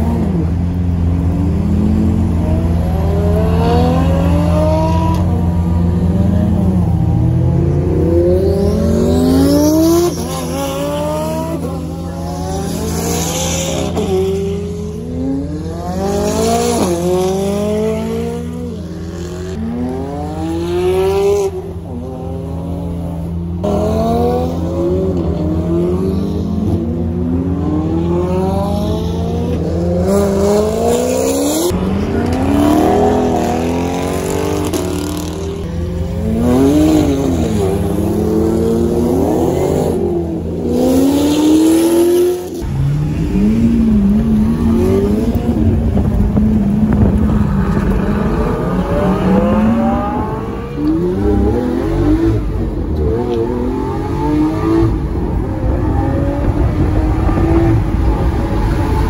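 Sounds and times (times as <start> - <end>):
sports cars accelerating past: 0.0 - 59.0.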